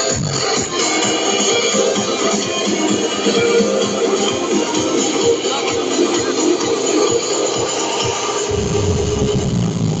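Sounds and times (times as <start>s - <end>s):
electronic house music: 0.0s - 10.0s
low bass drone: 8.5s - 10.0s.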